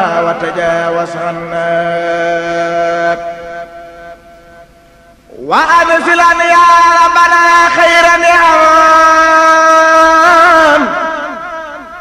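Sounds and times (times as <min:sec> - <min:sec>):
man chanting a long note: 0:00.0 - 0:12.0.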